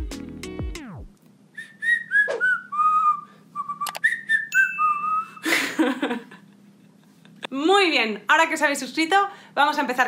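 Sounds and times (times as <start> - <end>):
woman whistling a tune: 1.6 - 5.5
sharp clicks: 3.8 - 4.0.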